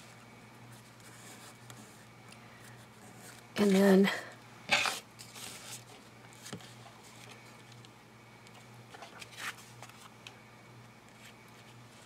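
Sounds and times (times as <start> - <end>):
paper and card rustling: 4.7 - 7.8, 8.5 - 10.2.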